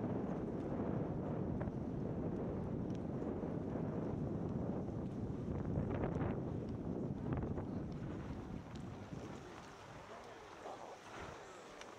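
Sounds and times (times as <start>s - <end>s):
wind buffeting microphone: 0.0s - 11.9s
faint clicks: 11.2s - 11.9s.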